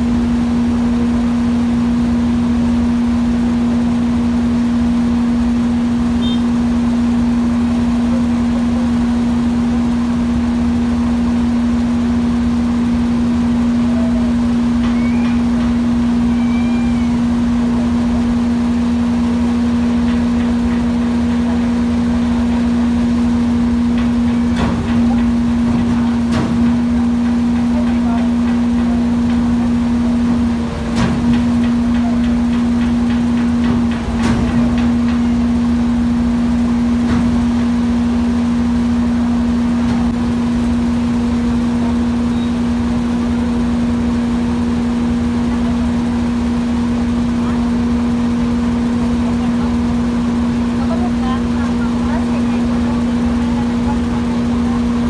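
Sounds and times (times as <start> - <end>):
machinery humming: 0.0 - 55.0.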